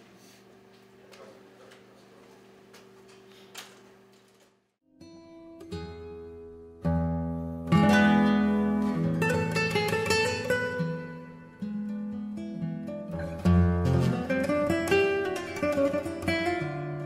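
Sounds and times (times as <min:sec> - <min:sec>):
faint room hum: 0:00.0 - 0:04.8
plucked string music: 0:04.9 - 0:17.0.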